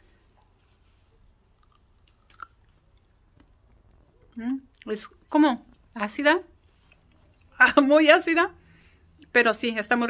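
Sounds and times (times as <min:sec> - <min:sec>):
chewing a berry: 0:00.2 - 0:05.3
wet mouth clicks: 0:01.5 - 0:02.8.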